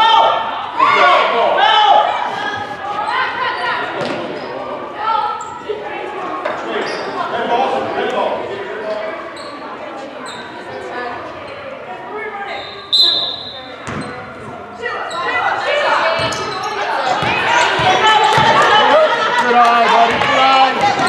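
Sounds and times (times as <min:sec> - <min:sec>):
referee's whistle blast: 0:12.6 - 0:13.7
basketballs bouncing on wooden floor: 0:13.8 - 0:14.5, 0:16.2 - 0:16.5, 0:17.1 - 0:18.7
spectators shouting: 0:17.0 - 0:21.0.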